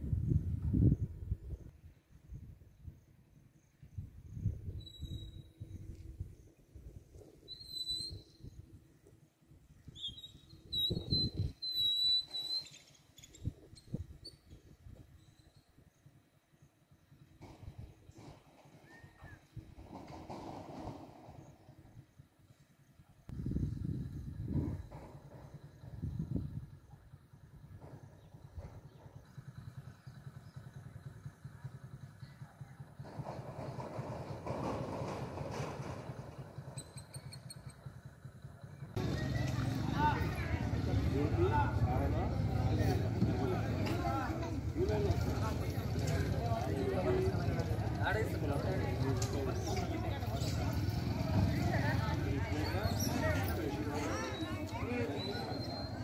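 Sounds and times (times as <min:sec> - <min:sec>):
wind buffeting microphone: 0:00.0 - 0:03.1, 0:23.3 - 0:27.0
bird whistling: 0:07.5 - 0:08.5, 0:09.9 - 0:13.4
distant motorcycle engine: 0:14.0 - 0:56.0.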